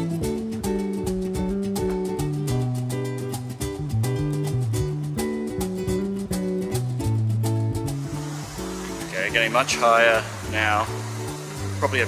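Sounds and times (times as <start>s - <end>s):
strummed acoustic guitar music: 0.0s - 12.0s.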